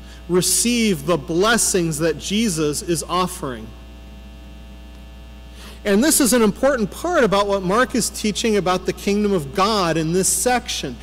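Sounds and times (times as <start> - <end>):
electrical mains hum: 0.0 - 11.0
man speaking: 0.3 - 3.7, 5.8 - 11.0.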